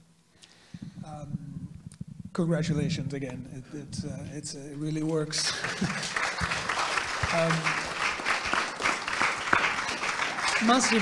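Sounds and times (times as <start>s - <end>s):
audience applauding: 5.1s - 11.0s.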